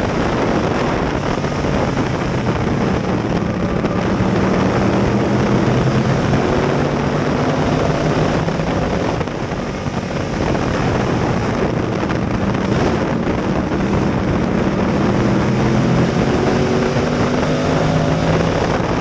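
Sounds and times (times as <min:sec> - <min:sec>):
race car engine running hard: 0:00.0 - 0:19.0.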